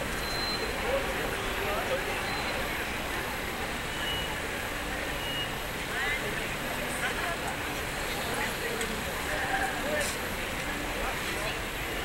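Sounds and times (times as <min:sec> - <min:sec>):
traffic rumble: 0:00.0 - 0:12.0
voices of passers-by: 0:00.0 - 0:12.0
faint high beeps: 0:00.1 - 0:01.0, 0:03.9 - 0:04.4, 0:05.2 - 0:05.6.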